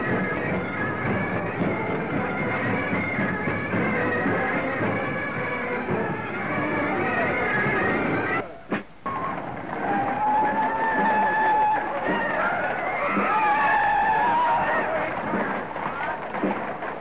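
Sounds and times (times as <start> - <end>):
crowd voices shouting: 9.1 - 17.0.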